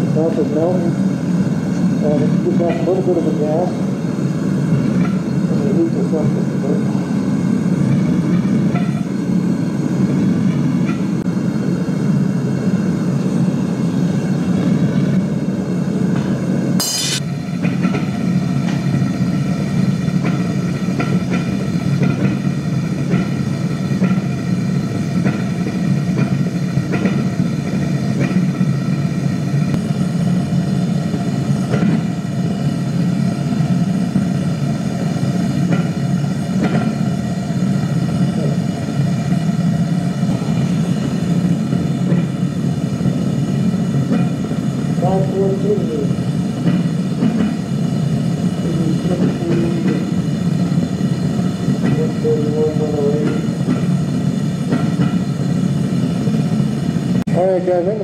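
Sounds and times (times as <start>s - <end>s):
furnace burner rushing: 0.0s - 58.0s.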